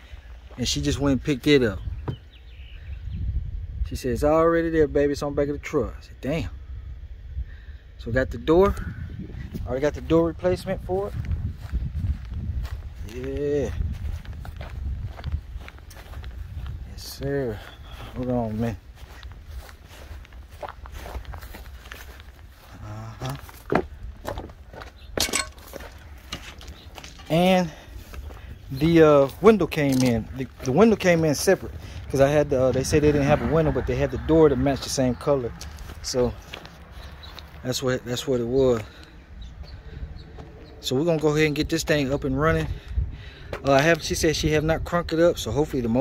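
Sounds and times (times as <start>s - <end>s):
low outdoor rumble on microphone: 0.0s - 46.0s
footsteps on grass and gravel: 0.1s - 2.5s, 8.6s - 46.0s
faint bird chirps: 1.6s - 3.4s, 17.4s - 18.6s
man's voice: 16.8s - 18.9s, 22.7s - 23.6s, 28.6s - 36.4s, 43.5s - 46.0s.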